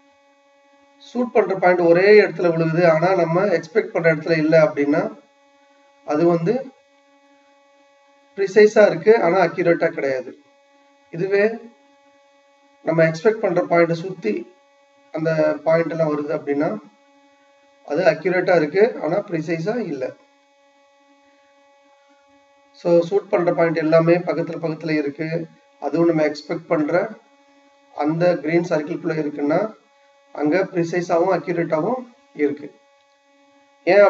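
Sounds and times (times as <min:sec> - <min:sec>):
faint electrical hum: 0:00.0 - 0:34.0
man speaking: 0:01.1 - 0:05.2, 0:06.1 - 0:06.7, 0:08.4 - 0:10.3, 0:11.2 - 0:11.7, 0:12.9 - 0:14.5, 0:15.2 - 0:16.9, 0:17.9 - 0:20.2, 0:22.8 - 0:27.2, 0:28.0 - 0:29.8, 0:30.4 - 0:32.7
man talking: 0:01.1 - 0:05.2, 0:06.1 - 0:06.7, 0:08.4 - 0:10.3, 0:11.2 - 0:11.7, 0:12.9 - 0:14.5, 0:15.2 - 0:16.9, 0:17.9 - 0:20.1, 0:22.8 - 0:27.2, 0:28.0 - 0:29.8, 0:30.4 - 0:32.7.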